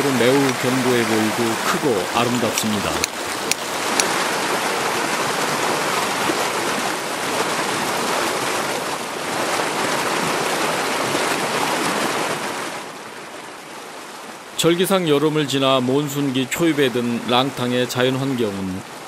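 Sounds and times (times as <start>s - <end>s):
mountain stream rushing: 0.0s - 19.0s.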